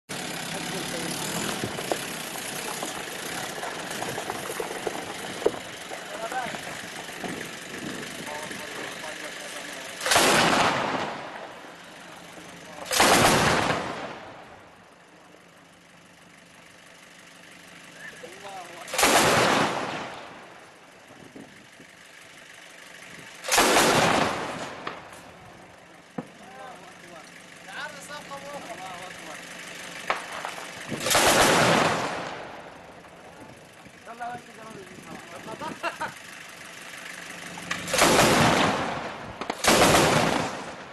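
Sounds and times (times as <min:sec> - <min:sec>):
truck engine running: 0:00.1 - 0:40.9
men's voices: 0:05.4 - 0:10.1, 0:26.2 - 0:29.5, 0:33.9 - 0:36.2
machine gun bursts: 0:10.0 - 0:11.2, 0:12.9 - 0:14.0, 0:18.9 - 0:20.1, 0:23.4 - 0:24.7, 0:31.0 - 0:32.2, 0:37.8 - 0:40.8.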